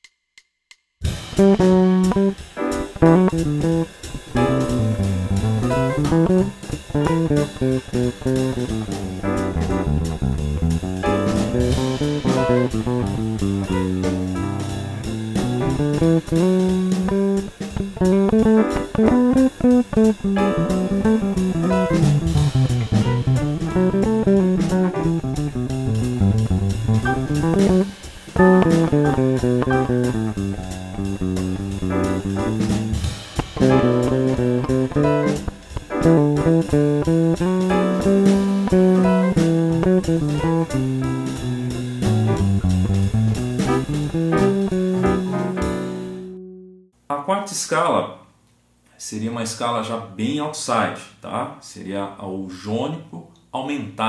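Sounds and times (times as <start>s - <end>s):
backing groove with drums: 1.0s - 46.2s
electric bass guitar line: 1.1s - 46.8s.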